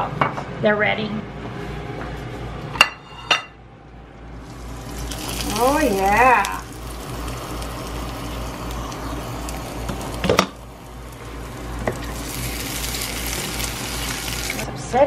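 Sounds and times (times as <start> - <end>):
eggs sizzling in skillet: 4.4 - 14.7.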